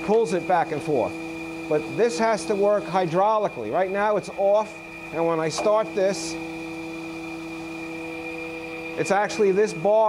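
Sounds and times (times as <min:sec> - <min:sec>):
grinder motor hum with whine: 0:00.0 - 0:10.0.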